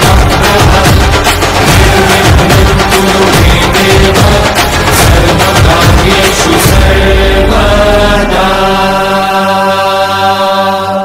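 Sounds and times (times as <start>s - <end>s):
devotional chant music: 0.0s - 11.0s
steady drone: 0.0s - 11.0s.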